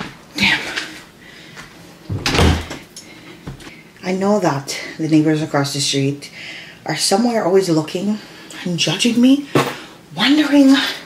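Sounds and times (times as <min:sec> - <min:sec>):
front door closing thud: 0:02.1 - 0:02.8.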